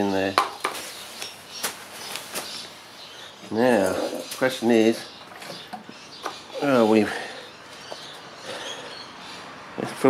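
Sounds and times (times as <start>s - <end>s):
soft rustle: 0.8s - 2.9s.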